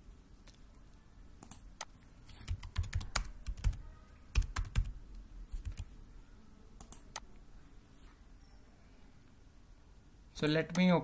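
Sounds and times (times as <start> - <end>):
keyboard typing: 1.4 - 6.0, 6.8 - 7.3.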